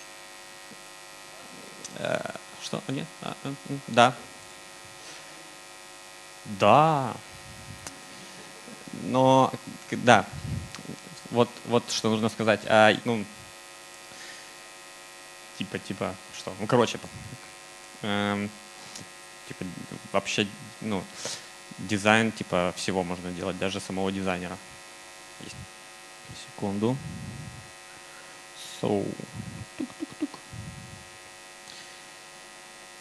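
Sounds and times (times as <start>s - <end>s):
electrical mains hum: 0.0s - 33.0s
faint sound system buzz: 0.0s - 33.0s
man saying filler word: 1.4s - 4.3s, 6.5s - 11.8s, 16.6s - 17.4s, 26.3s - 27.7s, 28.6s - 31.0s
person speaking: 1.4s - 4.4s, 6.5s - 13.2s, 15.7s - 17.4s, 28.6s - 31.0s.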